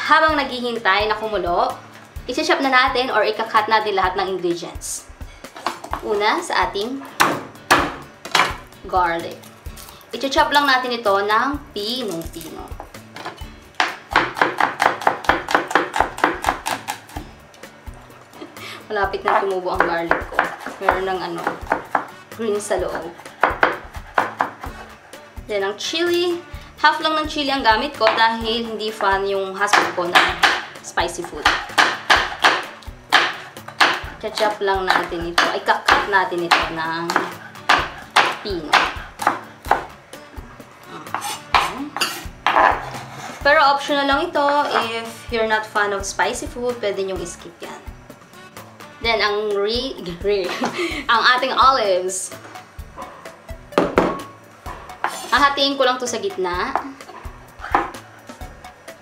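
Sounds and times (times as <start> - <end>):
knife chopping garlic: 13.8 - 17.2, 19.2 - 22.1, 22.9 - 25.0, 28.9 - 40.0, 41.0 - 43.0, 57.6 - 58.0.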